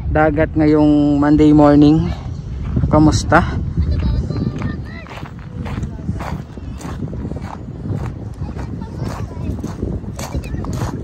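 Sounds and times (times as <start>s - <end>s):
footsteps crunching on sand: 1.9s - 11.0s.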